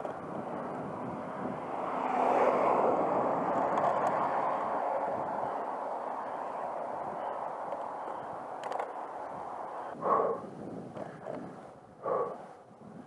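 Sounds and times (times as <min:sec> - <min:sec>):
wind and tyre noise from bike: 0:00.0 - 0:13.0.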